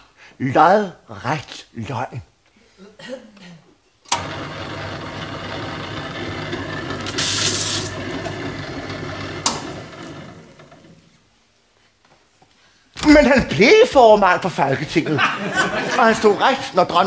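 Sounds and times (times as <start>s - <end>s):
shredder motor running: 4.1s - 11.0s
paper tearing through shredder: 4.2s - 11.0s.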